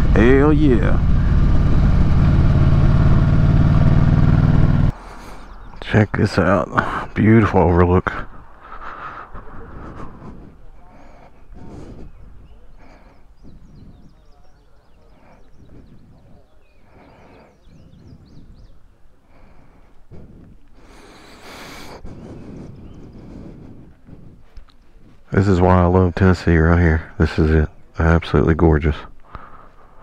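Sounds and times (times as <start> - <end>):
outdoor ambience: 0.0 - 30.0
people talking faintly: 9.3 - 20.5.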